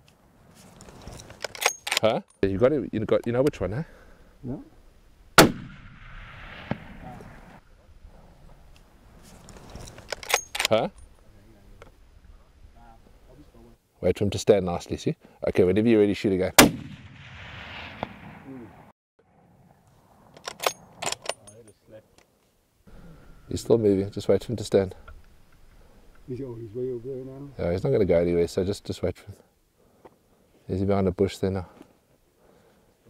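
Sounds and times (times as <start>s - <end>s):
rifle bolt metallic clicks: 0.8s - 2.4s, 9.5s - 11.1s, 20.4s - 21.7s
rifle shot echoing: 5.4s - 7.6s, 16.6s - 18.9s.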